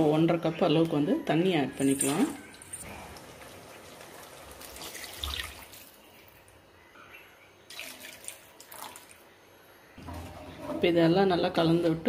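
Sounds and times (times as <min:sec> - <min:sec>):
water splashing into a wok: 0:03.7 - 0:06.1, 0:07.7 - 0:09.2.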